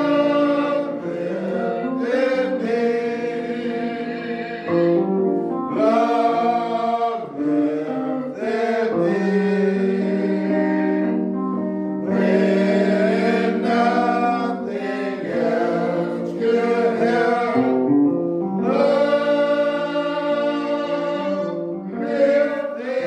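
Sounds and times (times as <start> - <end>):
gospel choir singing: 0.0 - 23.0.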